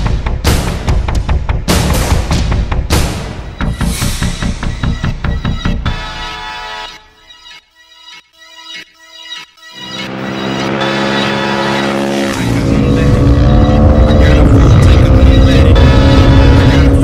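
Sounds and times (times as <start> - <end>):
motorcycle engine at high revs: 10.1 - 17.0.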